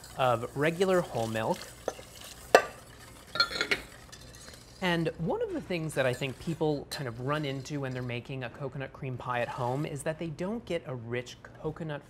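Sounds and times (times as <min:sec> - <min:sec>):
whisk clinking on saucepan: 0:00.0 - 0:08.1
man speaking: 0:00.2 - 0:01.6.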